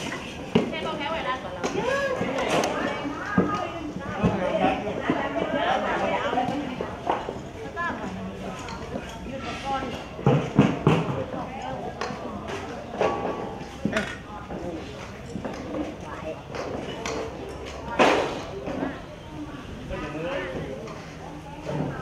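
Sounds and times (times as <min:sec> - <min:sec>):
people chattering: 0:00.0 - 0:22.0
people talking: 0:00.0 - 0:22.0.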